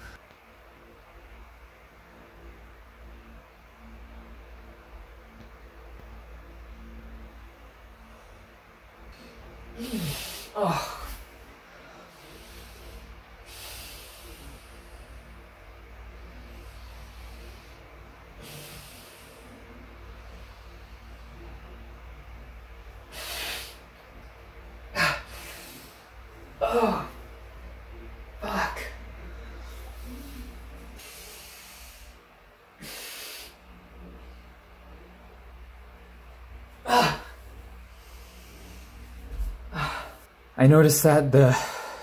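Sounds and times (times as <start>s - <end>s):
low steady hum: 0.0s - 42.0s
man breathing: 9.1s - 22.0s, 22.8s - 32.2s, 32.8s - 33.6s, 36.8s - 40.3s, 41.4s - 42.0s.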